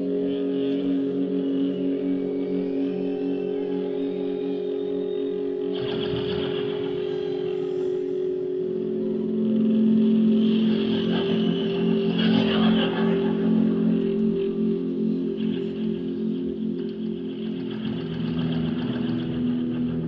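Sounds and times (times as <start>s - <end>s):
rock band playing drone-like notes: 0.0s - 20.0s.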